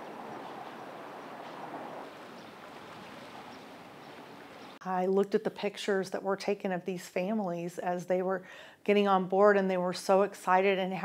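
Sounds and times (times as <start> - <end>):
outdoor ambient hiss by water: 0.0 - 4.8.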